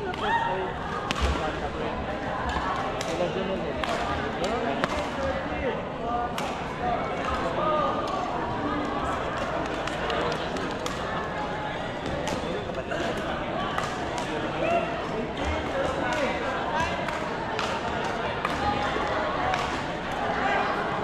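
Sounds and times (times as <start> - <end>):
chatter of many voices: 0.0 - 21.0.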